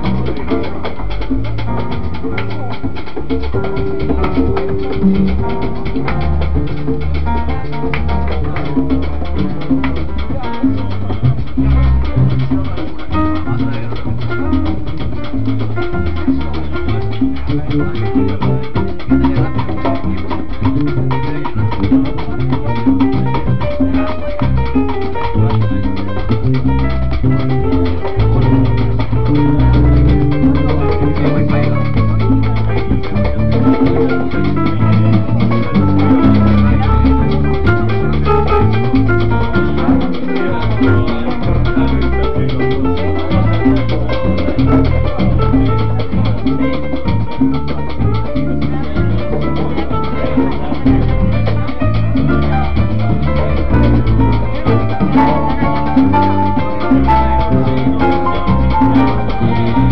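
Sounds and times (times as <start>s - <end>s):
electric bass: 0.0s - 59.9s
grand piano: 0.0s - 59.9s.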